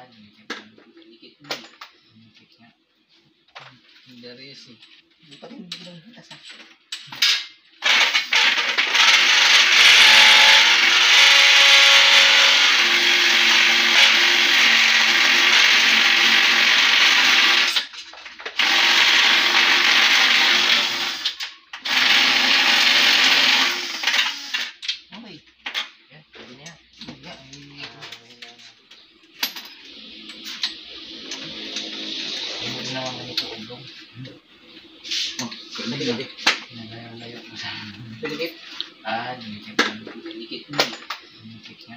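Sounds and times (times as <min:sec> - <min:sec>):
cordless drill running under load: 0:07.8 - 0:17.9, 0:18.6 - 0:24.7.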